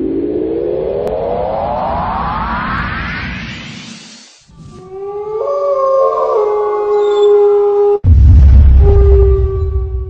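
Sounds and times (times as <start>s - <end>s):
howl-like held tones: 4.6s - 8.1s, 8.8s - 10.0s.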